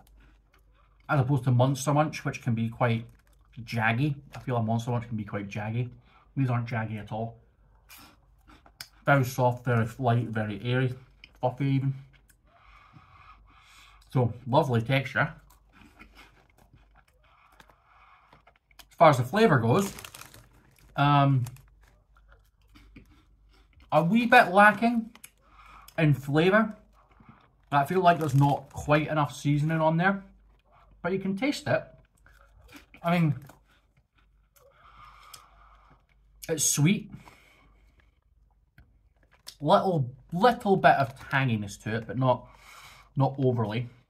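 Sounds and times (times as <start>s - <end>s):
soft chewing of puffed snack: 0.0s - 44.0s
soft breath: 12.4s - 14.1s.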